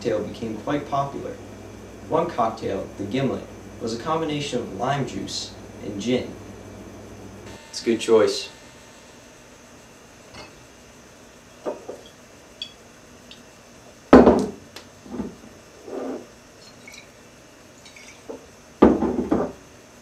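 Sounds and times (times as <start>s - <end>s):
glasses and bottles clinking: 16.6s - 17.1s, 17.8s - 18.4s.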